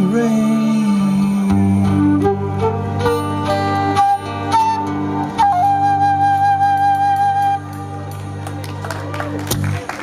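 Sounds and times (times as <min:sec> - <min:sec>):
guitar chords: 0:00.0 - 0:09.9
flute solo: 0:01.8 - 0:08.4.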